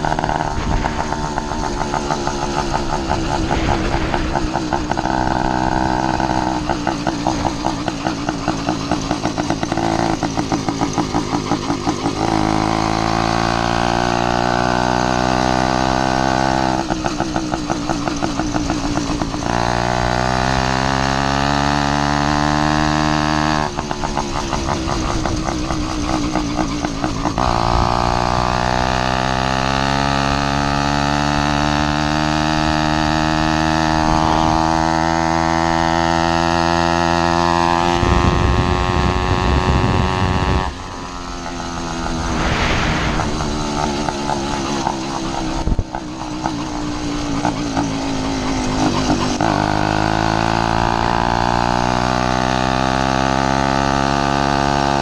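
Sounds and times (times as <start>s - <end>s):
low rumble: 0.0s - 7.6s, 39.6s - 44.7s
two-stroke bicycle engine running: 0.0s - 55.0s.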